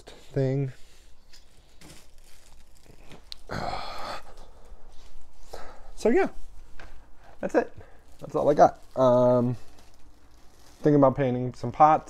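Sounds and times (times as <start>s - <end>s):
rustling: 0.0s - 3.5s, 4.4s - 12.0s.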